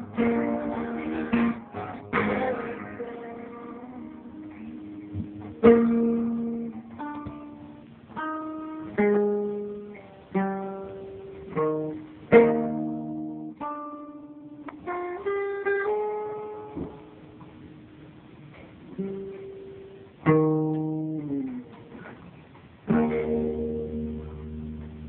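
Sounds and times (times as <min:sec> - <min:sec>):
acoustic guitar: 0:00.0 - 0:17.7, 0:18.4 - 0:25.0.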